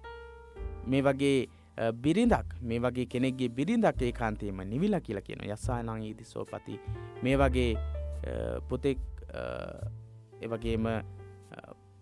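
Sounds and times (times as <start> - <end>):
background music: 0.0 - 12.0
person speaking: 0.8 - 11.8.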